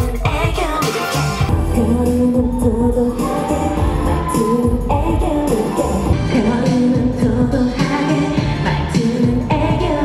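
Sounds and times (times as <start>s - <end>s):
female vocals: 0.0s - 10.0s
loud pop backing track: 0.0s - 10.0s.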